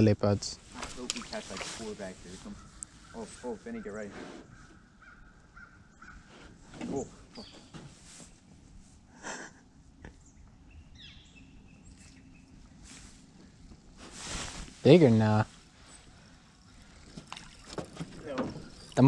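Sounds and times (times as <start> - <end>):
faint bird calls: 0.7 - 8.2, 10.0 - 13.9, 15.6 - 19.0.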